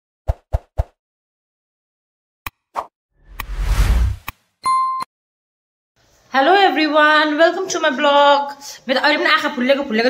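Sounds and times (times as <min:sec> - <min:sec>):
whoosh: 0:03.2 - 0:04.3.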